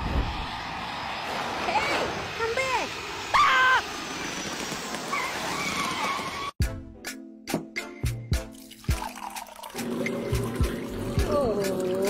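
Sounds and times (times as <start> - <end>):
steady rushing noise: 0.0 - 5.6.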